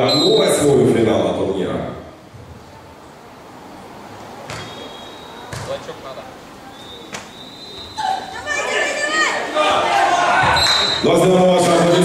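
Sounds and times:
volleyball struck by hand: 4.5 - 4.8, 5.5 - 5.9.

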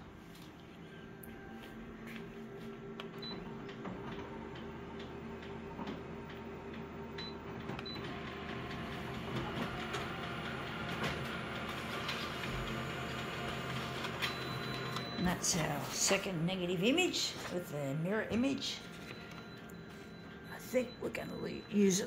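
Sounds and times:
copier humming: 0.0 - 22.0
print mechanism feeding copy: 3.4 - 20.4.

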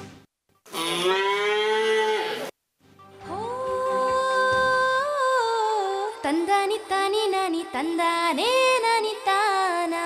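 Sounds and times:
calf mooing: 0.7 - 2.5.

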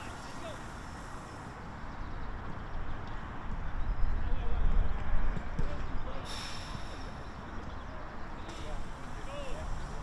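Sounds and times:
distant indistinct voices: 0.0 - 10.0.

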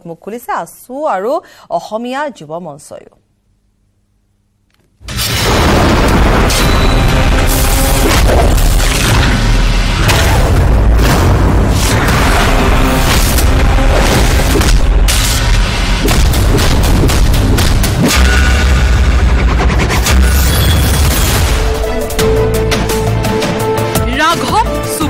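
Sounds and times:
heavy booming hits: 5.0 - 20.1
dramatic action film music: 5.1 - 25.0.

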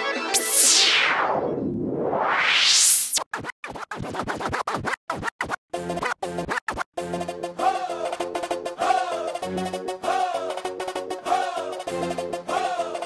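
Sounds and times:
noise sweep effect: 0.2 - 3.2
stuttering chopped music: 2.8 - 6.9.

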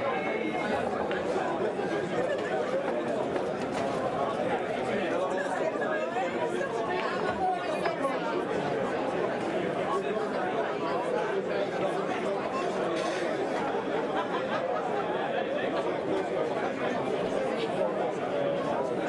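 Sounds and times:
chatter of many people: 0.0 - 19.0.

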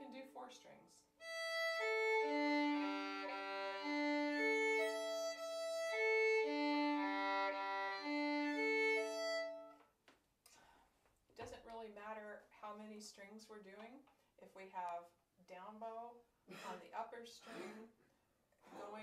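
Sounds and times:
violin slurred string crossings: 1.2 - 9.8.

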